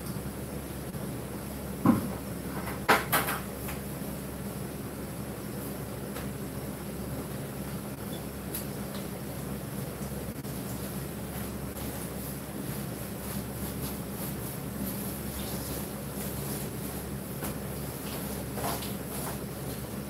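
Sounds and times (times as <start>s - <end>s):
low mechanical hum: 0.0s - 20.0s.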